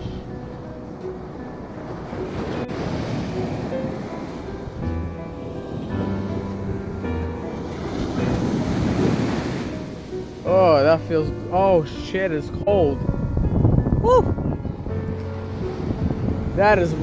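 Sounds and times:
background music with held chords: 0.0s - 17.0s
ocean surf washing onto beach: 0.0s - 17.0s
wave breaking: 0.0s - 17.0s
wind buffeting microphone: 0.0s - 17.0s.

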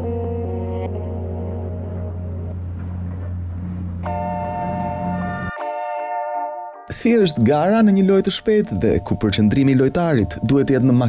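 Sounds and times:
low synthesizer drone: 0.0s - 6.9s.

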